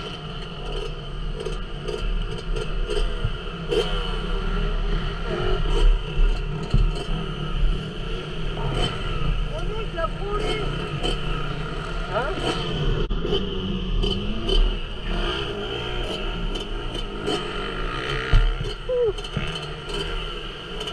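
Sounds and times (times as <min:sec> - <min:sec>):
motocross bike engine idling: 0:00.0 - 0:13.0.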